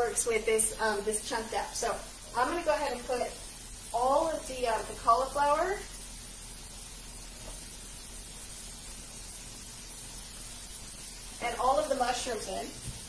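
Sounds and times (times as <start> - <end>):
woman speaking: 0.0 - 3.4, 4.0 - 5.9, 11.4 - 12.8
vegetables sauteing in pans: 0.0 - 13.0.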